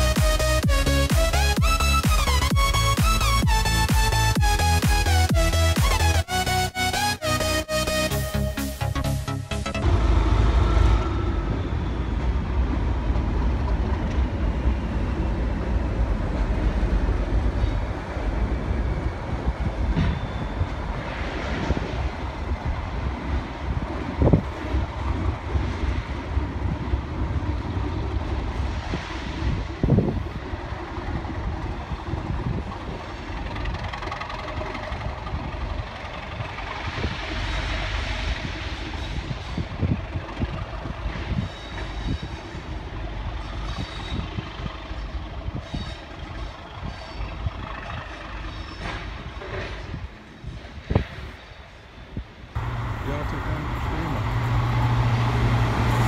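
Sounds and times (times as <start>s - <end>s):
diesel train engine rumble: 0.0s - 56.0s
train wheels on rails: 9.8s - 56.0s.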